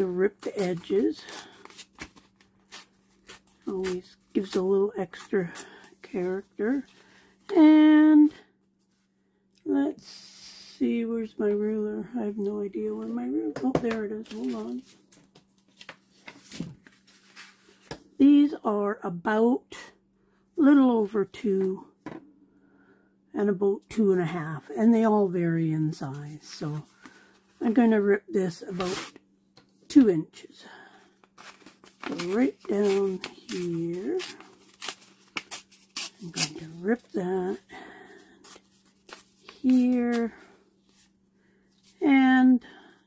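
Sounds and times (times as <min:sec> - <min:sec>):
paper tearing: 0:31.4 - 0:37.1.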